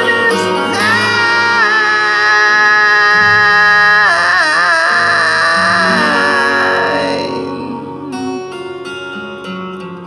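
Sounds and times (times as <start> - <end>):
acoustic guitar: 0.0 - 10.0
man singing a held note: 0.4 - 8.3.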